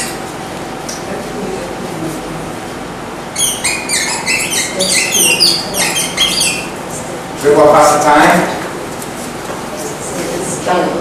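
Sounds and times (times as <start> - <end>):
marker squeaking on whiteboard: 3.4 - 6.8.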